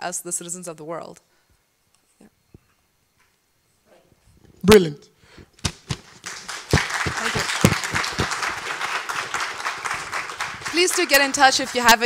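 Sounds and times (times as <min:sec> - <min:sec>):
audience applause: 0:05.7 - 0:12.0.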